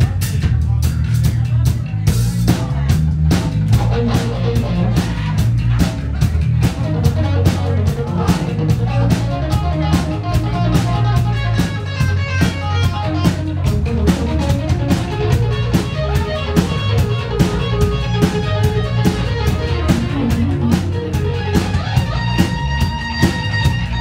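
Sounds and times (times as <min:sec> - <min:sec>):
bass guitar: 0:00.0 - 0:24.0
drum kit beat: 0:00.0 - 0:24.0.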